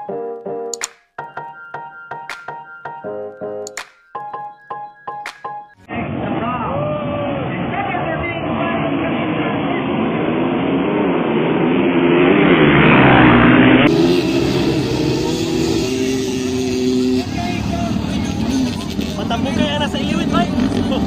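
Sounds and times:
dirt bike engines revving: 7.3s - 21.0s.

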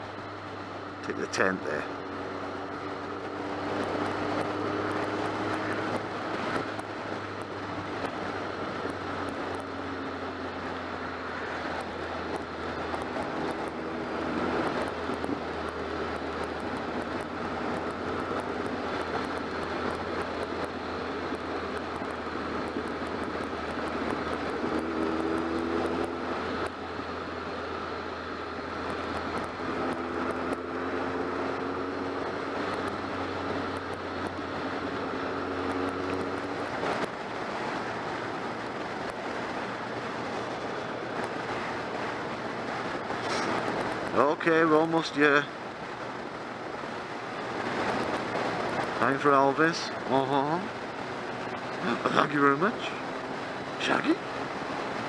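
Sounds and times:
motorcycle engine: 0.0s - 55.0s
wind and road noise: 0.0s - 55.0s.

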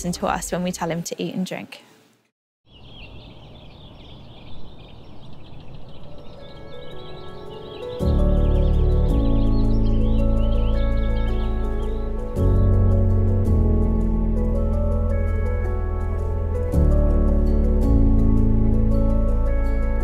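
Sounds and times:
small birds twittering: 2.7s - 12.8s
slow background music: 5.7s - 20.0s
deep bass chord: 7.9s - 20.0s.

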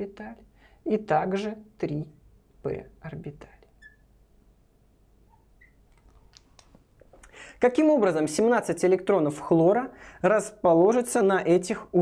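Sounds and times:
marker squeaking on glass board: 3.7s - 4.2s, 5.2s - 5.9s.

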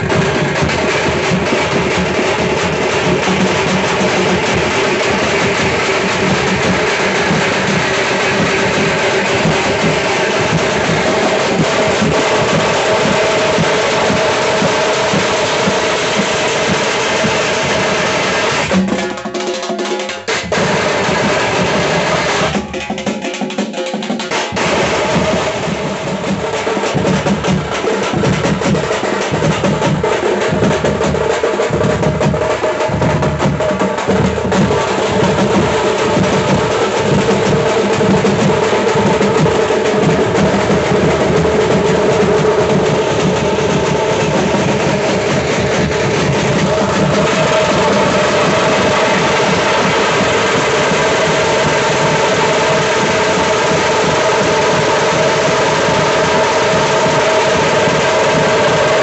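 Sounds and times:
deep bass drums: 0.0s - 15.8s, 24.6s - 51.0s
fast side drumming: 0.0s - 59.0s.

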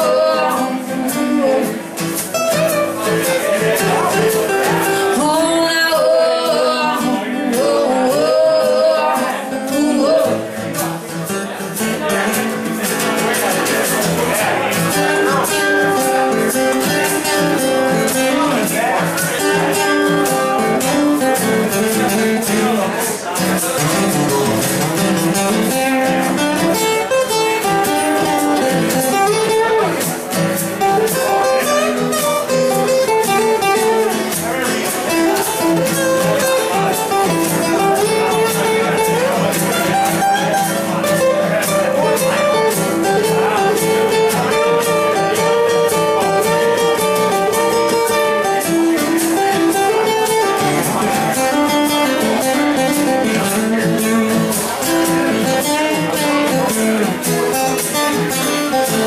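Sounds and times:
acoustic guitars strummed and picked: 0.0s - 59.0s.

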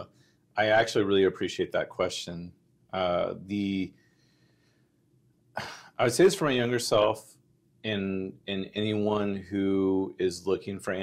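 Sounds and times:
man coughing: 5.6s - 6.0s.

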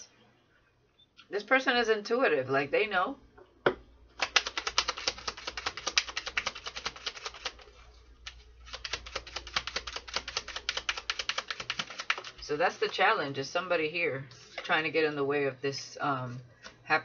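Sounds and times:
cards being shuffled: 4.2s - 12.9s.

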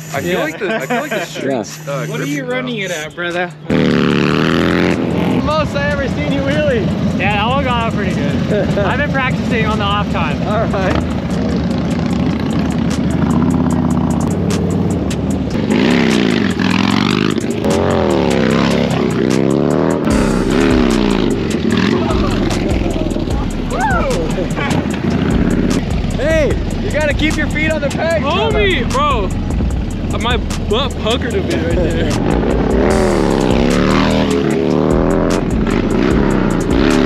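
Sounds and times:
motorcycle engine revving: 1.8s - 37.0s.

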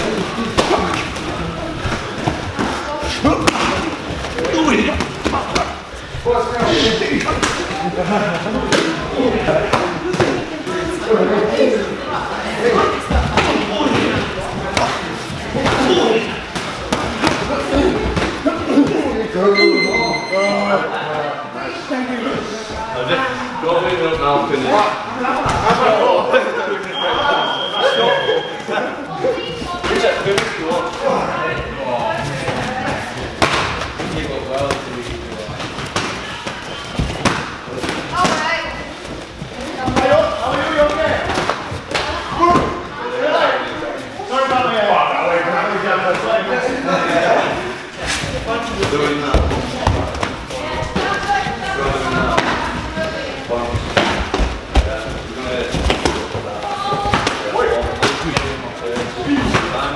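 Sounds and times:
voices talking: 0.0s - 33.4s.

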